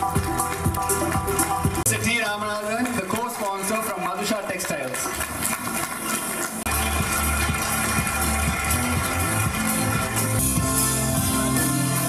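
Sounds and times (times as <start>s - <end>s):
music with sustained tones: 0.0s - 1.9s, 6.7s - 12.0s
deep bass line: 0.0s - 2.0s, 6.7s - 12.0s.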